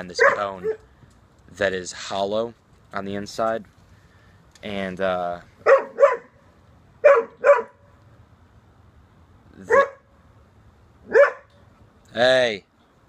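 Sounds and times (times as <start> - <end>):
dog barking: 0.2 - 0.8, 5.6 - 6.4, 7.0 - 7.8, 9.7 - 10.0, 11.1 - 11.5.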